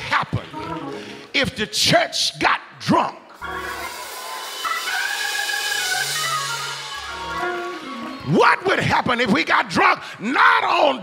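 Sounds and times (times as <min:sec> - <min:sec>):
faint congregation noise: 0:03.3 - 0:10.2
church organ chords: 0:03.4 - 0:08.4.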